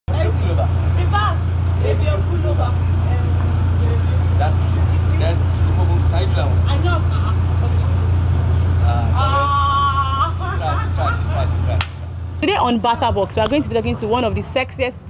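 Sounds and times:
indistinct voices talking: 0.1s - 15.0s
loud steady low hum: 0.1s - 15.0s.

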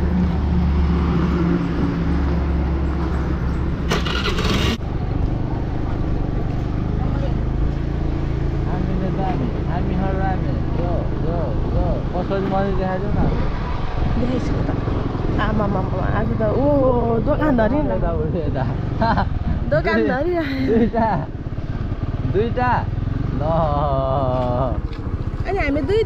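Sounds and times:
motor scooter engine: 0.0s - 13.0s, 14.2s - 26.0s
road noise on dirt track: 0.0s - 26.0s
voices: 8.6s - 13.4s, 14.1s - 18.8s, 19.6s - 21.3s, 22.2s - 26.0s.

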